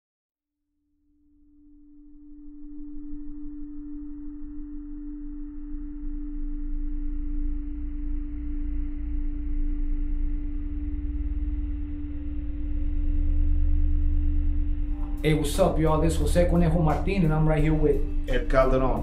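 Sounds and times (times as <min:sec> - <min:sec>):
steady hum-like drone: 0:01.7 - 0:19.0
deep bass rumble: 0:04.1 - 0:19.0.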